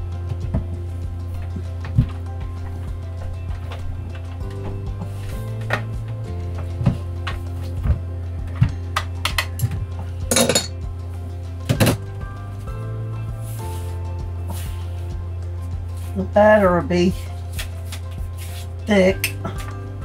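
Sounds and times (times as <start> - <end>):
background music: 0.0 - 20.0.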